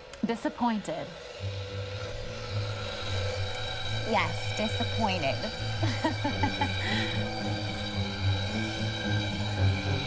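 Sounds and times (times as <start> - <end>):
faint steady hum: 0.0 - 10.0
low musical drone: 0.0 - 10.0.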